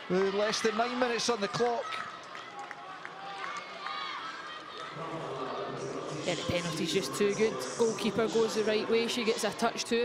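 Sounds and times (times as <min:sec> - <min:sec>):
stadium background noise: 0:00.0 - 0:10.0.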